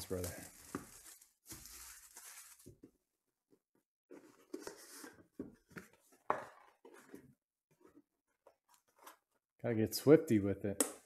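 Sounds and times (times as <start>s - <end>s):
plastic wrap rustling: 0.0s - 2.9s.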